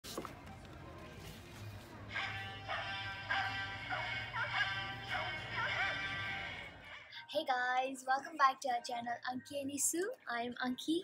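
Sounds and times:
tinny greeting card tune: 2.1 - 7.0.

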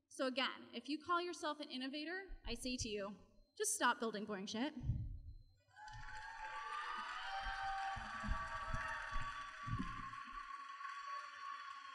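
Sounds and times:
audience applauding: 5.8 - 11.9.

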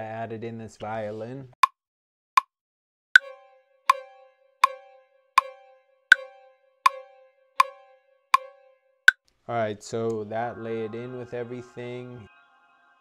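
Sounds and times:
metronome clicking: 3.2 - 8.5
held violin note: 3.2 - 9.0.

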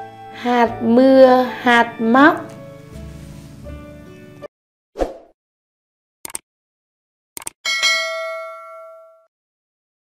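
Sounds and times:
bell ding: 7.7 - 9.3.

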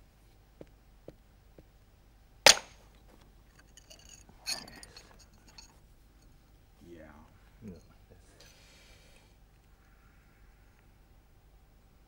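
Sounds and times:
mallet crack on flint: 2.5 - 2.8
flint clinking: 3.5 - 6.4.

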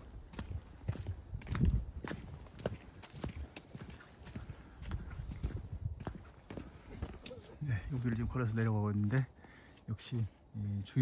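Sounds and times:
footsteps crunching on dry leaves: 0.0 - 9.3.

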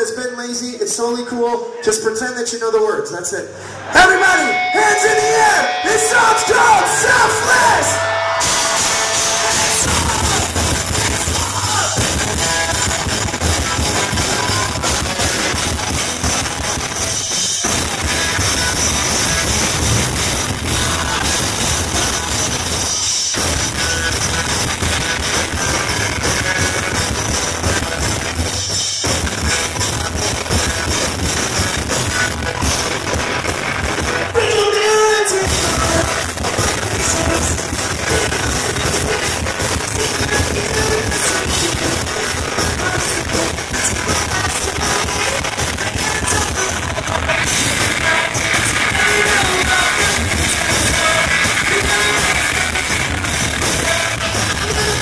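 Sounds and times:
pop-punk band playing live: 3.9 - 55.0
person singing: 4.4 - 19.7, 20.4 - 23.1, 34.4 - 55.0.

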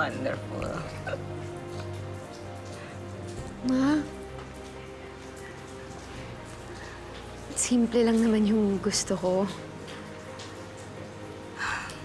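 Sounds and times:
soft music with sustained notes: 0.0 - 12.0.

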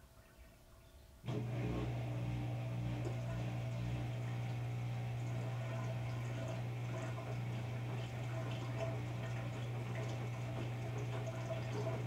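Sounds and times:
washing machine pump humming: 1.2 - 12.0.

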